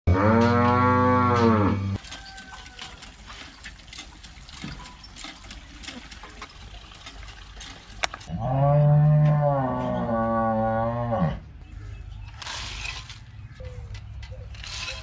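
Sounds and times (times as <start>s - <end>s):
cow mooing: 0.1s - 2.0s, 8.3s - 11.4s.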